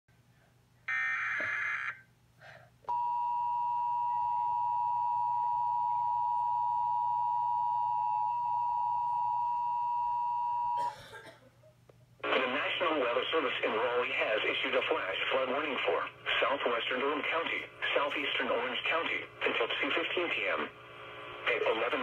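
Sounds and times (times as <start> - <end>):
steady warning alarm tone: 0.9 - 2.0, 2.9 - 10.8.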